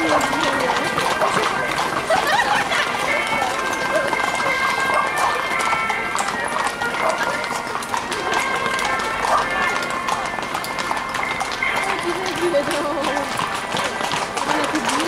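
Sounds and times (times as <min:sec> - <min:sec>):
horse hooves on asphalt: 0:00.0 - 0:15.0
voices: 0:00.0 - 0:15.0.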